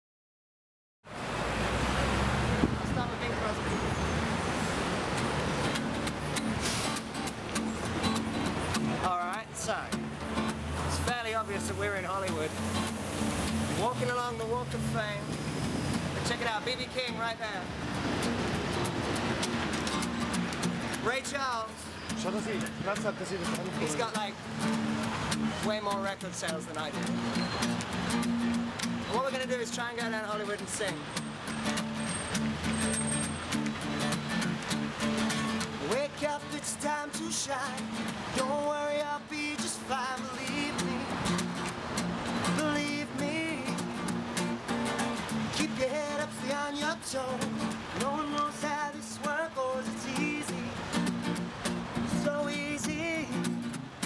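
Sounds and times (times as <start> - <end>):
cars and buses driving past: 1.1 - 54.0
acoustic guitar strumming: 3.4 - 54.0.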